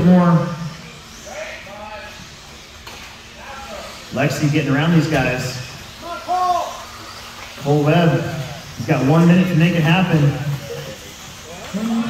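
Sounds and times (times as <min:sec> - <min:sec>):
rc cars hissing on dirt track: 0:00.0 - 0:12.0.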